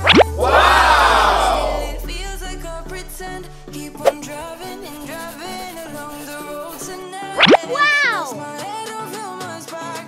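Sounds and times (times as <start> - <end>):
crowd exclaiming: 0.0 - 2.6
rising whoosh: 0.0 - 7.6
background music: 0.0 - 10.0.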